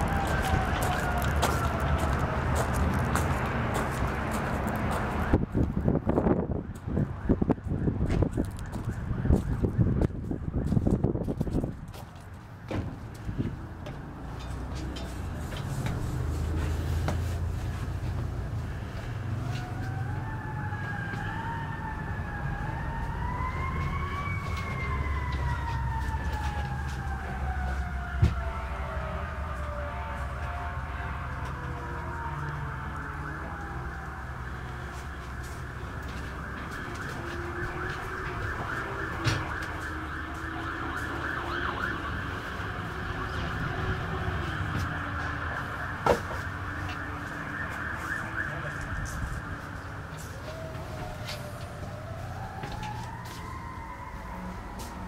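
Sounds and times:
siren wailing: 0.0s - 3.7s, 4.8s - 11.7s, 18.7s - 55.0s.

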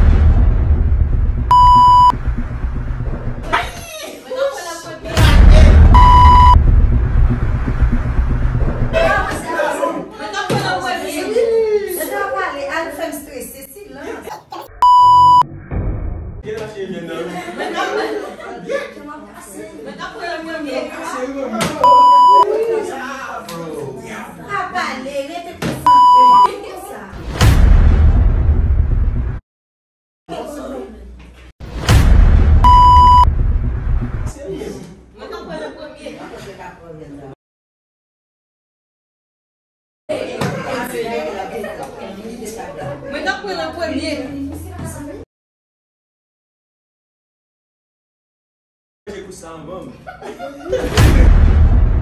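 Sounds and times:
censor beep: 1.5s - 2.2s, 5.8s - 6.6s, 14.8s - 15.5s, 21.8s - 22.5s, 25.9s - 26.5s, 32.6s - 33.3s.

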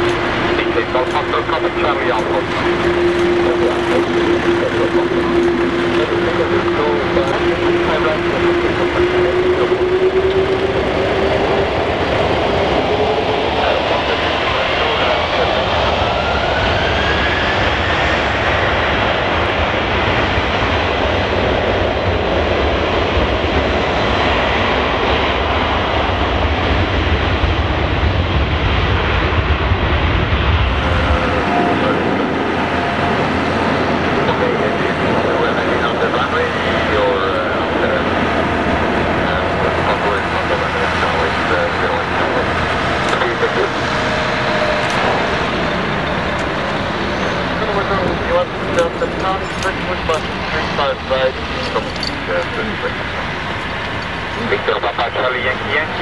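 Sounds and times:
jet engine noise: 0.0s - 56.0s
jet engines at high thrust: 0.0s - 56.0s.

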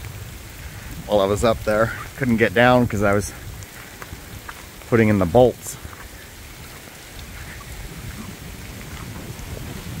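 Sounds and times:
heavy rain on lawn and trees: 0.0s - 10.0s.

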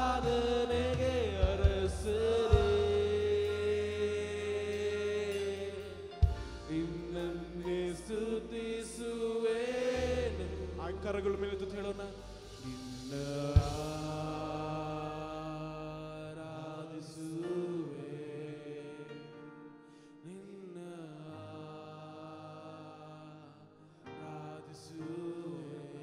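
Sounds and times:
held backing chords: 0.0s - 16.6s
man singing into a microphone: 0.0s - 19.4s, 20.2s - 26.0s.

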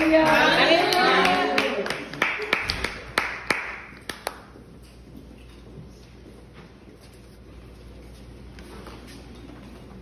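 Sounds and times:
audience applause: 0.0s - 4.4s.

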